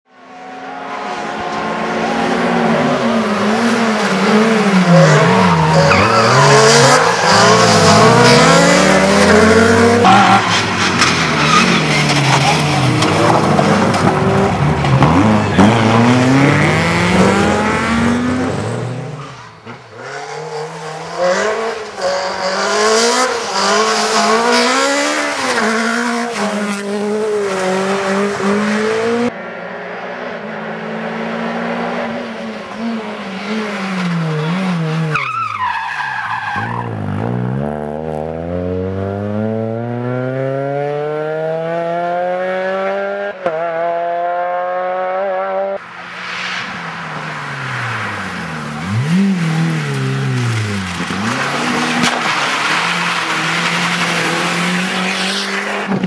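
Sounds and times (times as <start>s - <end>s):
rally car engines revving: 0.2s - 56.0s.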